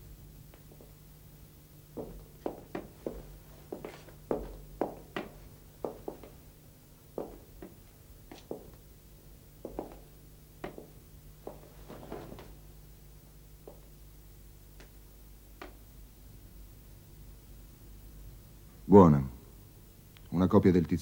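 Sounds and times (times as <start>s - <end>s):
faint low hum: 0.0s - 21.0s
footsteps on hard floor: 2.0s - 6.4s, 7.2s - 8.8s, 9.6s - 12.6s.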